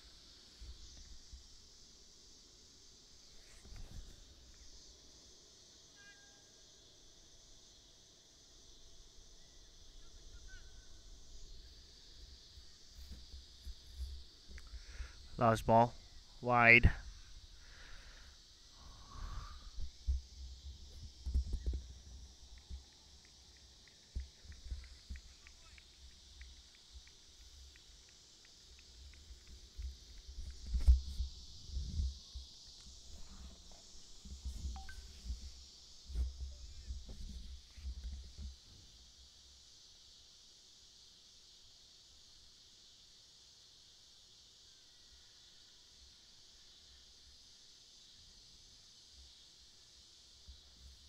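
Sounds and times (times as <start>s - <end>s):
faint high hiss: 0.0s - 51.0s.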